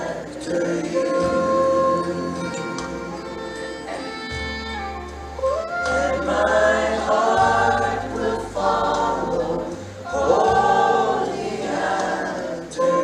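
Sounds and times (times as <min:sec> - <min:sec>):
people singing in harmony: 0:00.0 - 0:04.1, 0:05.6 - 0:13.0
sustained low bass notes: 0:00.0 - 0:13.0.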